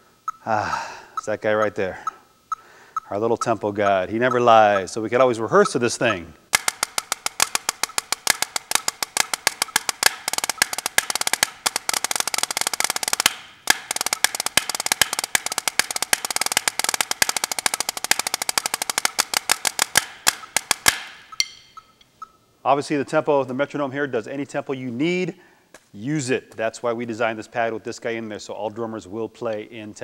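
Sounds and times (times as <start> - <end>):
drumsticks on snare practice pad: 3.4 - 22.1.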